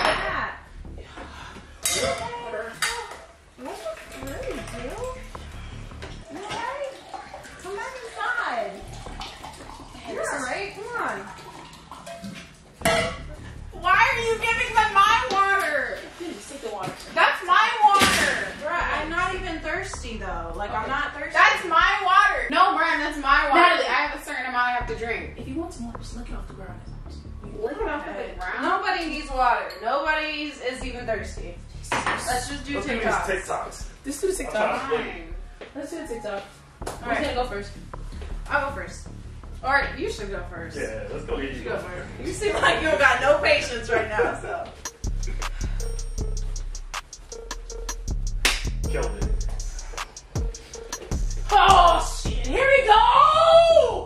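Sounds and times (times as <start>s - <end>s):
low background music: 0.0s - 54.0s
dishes and glassware clinking: 1.8s - 5.2s, 11.5s - 13.6s.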